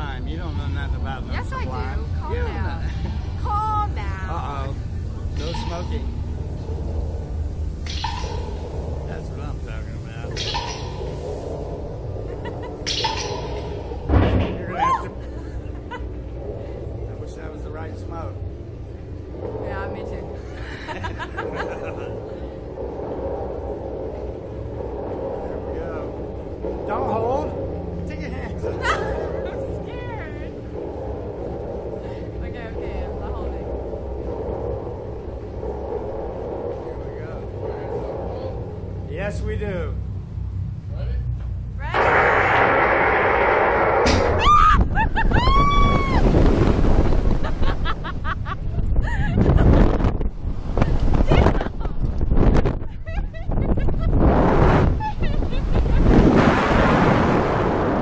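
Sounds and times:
wind rushing past microphone: 0.0s - 40.9s, 41.8s - 58.0s
low background rumble: 0.0s - 58.0s
laughter: 12.3s - 12.9s, 15.2s - 16.2s, 20.6s - 22.2s, 28.7s - 29.6s, 44.9s - 45.6s, 47.3s - 50.0s, 51.2s - 52.1s, 52.8s - 54.2s, 55.0s - 56.2s
loud rush of air: 18.1s - 40.9s, 41.9s - 48.2s, 49.4s - 58.0s
riders screaming and whooping: 44.3s - 46.5s.

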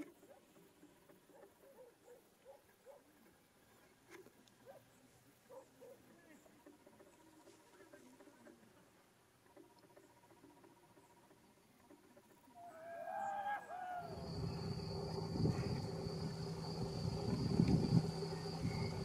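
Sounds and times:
steady high-pitched whine: 13.6s - 19.0s
low rumbling background: 14.0s - 19.0s.

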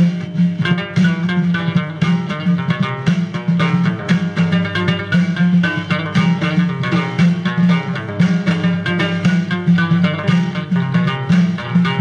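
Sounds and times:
frame drums: 0.0s - 12.0s
plucked lute melody: 0.0s - 12.0s.

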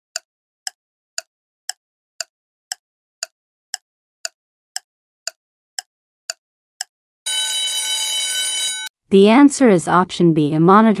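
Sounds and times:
timer ticks: 0.2s - 7.4s
bell-like alarm ringing: 7.3s - 8.9s.

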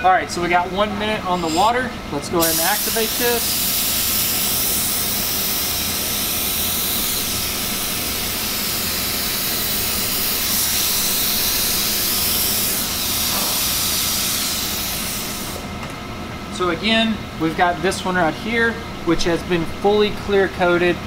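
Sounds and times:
spray gun hissing: 2.4s - 15.6s.

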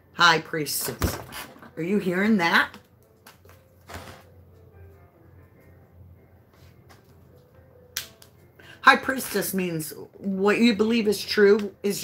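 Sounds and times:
woman speaking: 0.2s - 2.8s, 8.8s - 12.0s.

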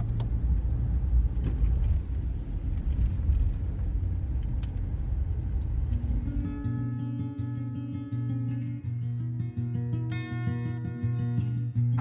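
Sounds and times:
road and engine rumble in car: 0.0s - 7.1s.

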